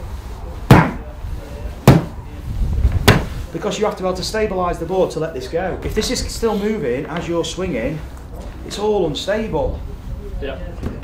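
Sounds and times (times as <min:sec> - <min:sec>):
golf club striking turf mat: 0:01.8 - 0:02.2, 0:03.0 - 0:03.4.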